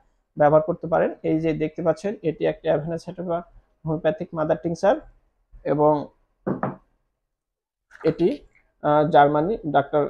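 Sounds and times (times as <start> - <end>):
man speaking: 8.0 - 10.0.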